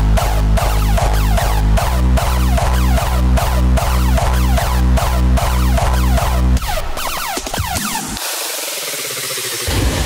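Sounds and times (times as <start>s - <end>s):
low bass and kick drum: 0.0s - 6.6s
hardstyle electronic music: 0.0s - 10.0s
synthesized noise wash: 7.0s - 10.0s.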